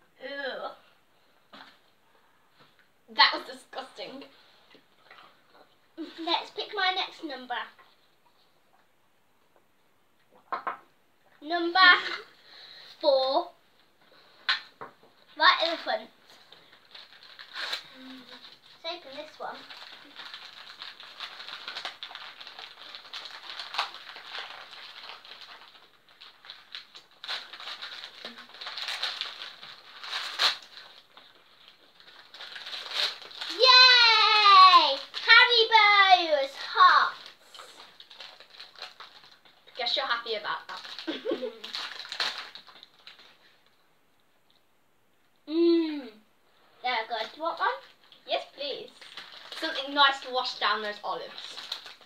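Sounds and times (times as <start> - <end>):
wrapping crinkling and tearing: 11.9 - 43.8, 46.6 - 52.0.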